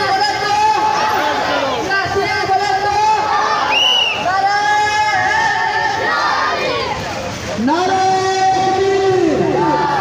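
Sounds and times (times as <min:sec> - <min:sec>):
crowd chanting slogans: 0:00.0 - 0:07.7, 0:08.5 - 0:10.0.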